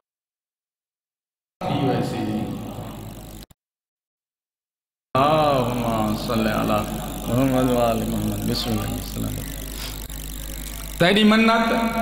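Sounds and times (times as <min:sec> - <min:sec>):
public address system hum: 0:05.2 - 0:12.0
man's amplified voice: 0:11.0 - 0:12.0.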